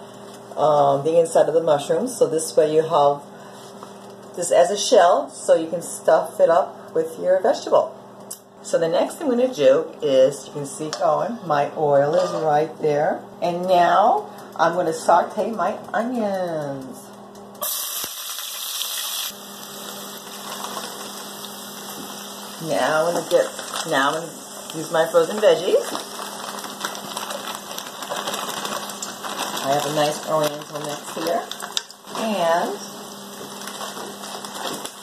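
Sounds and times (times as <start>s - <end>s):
onions sizzling in hot oil: 17.6s - 35.0s.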